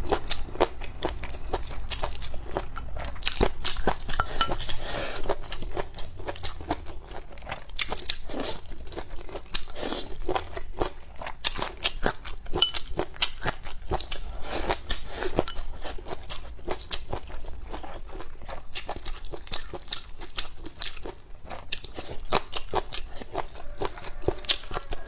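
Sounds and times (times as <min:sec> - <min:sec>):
person chewing and crunching: 0:00.0 - 0:25.0.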